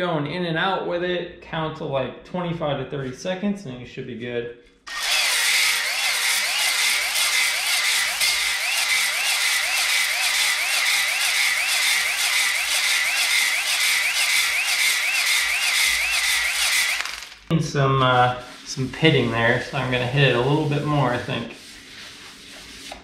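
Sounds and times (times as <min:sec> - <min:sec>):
cordless drill whining: 0:04.9 - 0:17.5.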